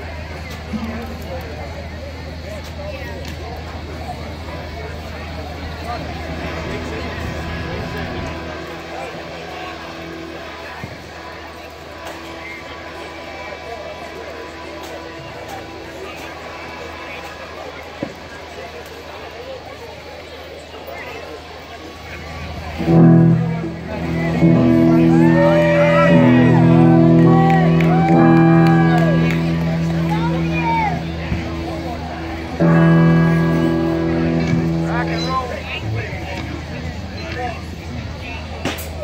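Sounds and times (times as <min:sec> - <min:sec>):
voices: 0:00.0 - 0:39.0
live band music through pa: 0:22.8 - 0:36.2.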